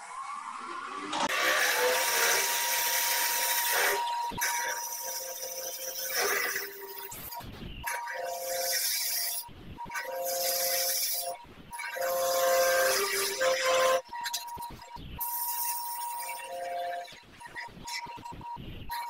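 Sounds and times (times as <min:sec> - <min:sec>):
thin high whine: 0:01.3 - 0:19.0.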